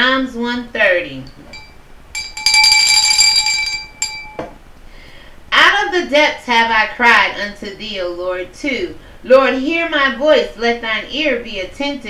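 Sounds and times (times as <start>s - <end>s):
bright bell-like ring: 1.5s - 4.6s.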